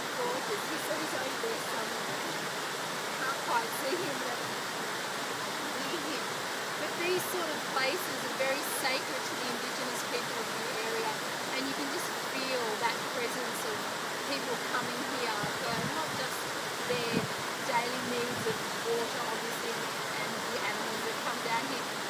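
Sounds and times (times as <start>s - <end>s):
waterfall rushing over rock: 0.0s - 22.0s.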